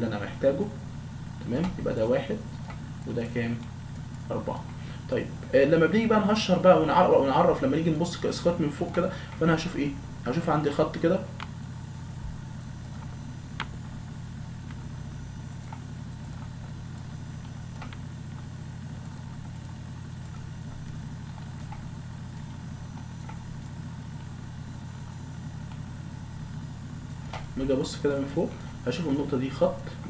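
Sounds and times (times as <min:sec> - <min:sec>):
low electrical hum: 0:00.0 - 0:30.0.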